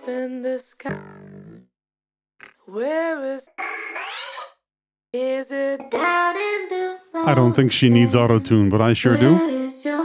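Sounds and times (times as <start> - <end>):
auto-tuned female vocal: 2.7 - 3.5, 7.2 - 9.7.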